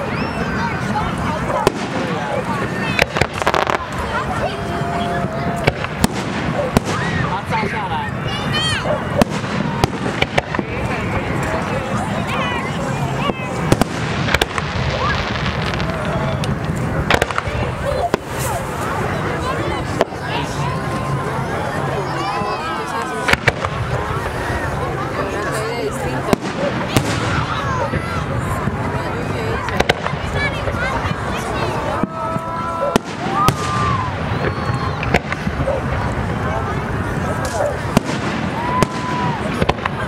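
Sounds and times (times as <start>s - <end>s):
fireworks bursting: 0.0s - 40.0s
people talking: 0.0s - 40.0s.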